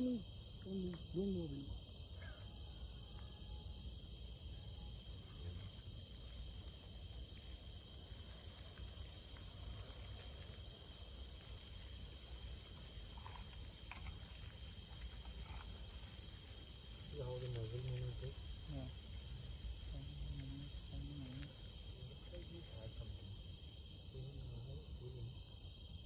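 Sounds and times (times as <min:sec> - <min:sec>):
crickets chirping: 0:00.0 - 0:26.0.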